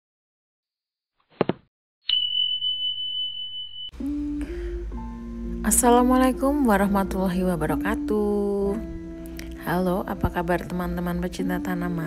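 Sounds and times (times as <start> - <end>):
bright bell ding: 2.1 - 4.0
music: 4.0 - 12.0.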